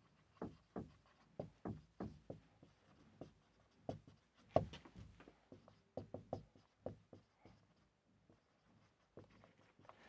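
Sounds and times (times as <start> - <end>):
marker pen writing on whiteboard: 0.0 - 10.0.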